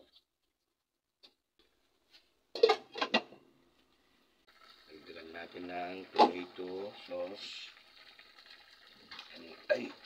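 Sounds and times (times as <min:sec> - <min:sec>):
glass lid clattering on pot: 0:02.6 - 0:03.4.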